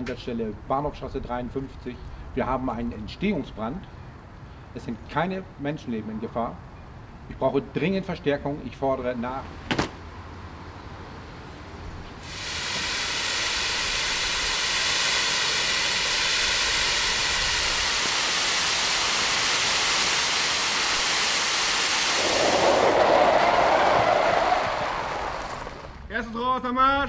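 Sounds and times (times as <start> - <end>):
water spraying from fire hose: 12.2 - 26.0
low water rushing: 12.2 - 26.1.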